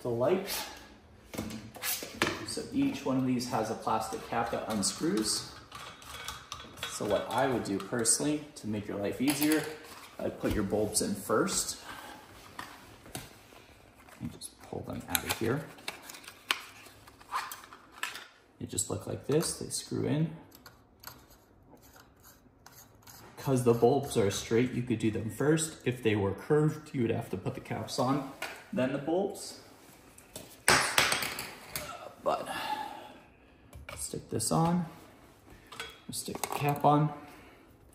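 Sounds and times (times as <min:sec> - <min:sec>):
faint room noise: 0:00.0 - 0:37.9.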